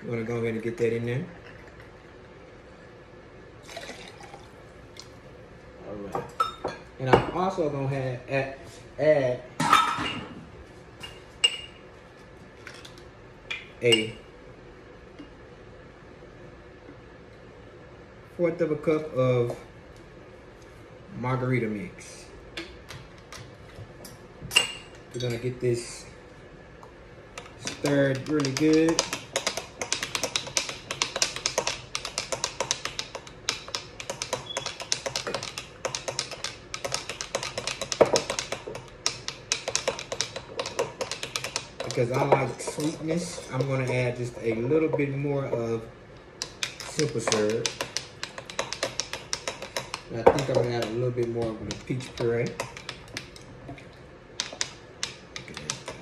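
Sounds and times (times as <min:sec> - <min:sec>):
glassware clinking: 0:11.0 - 0:11.8
spoon stirring in a pitcher: 0:27.4 - 0:45.1.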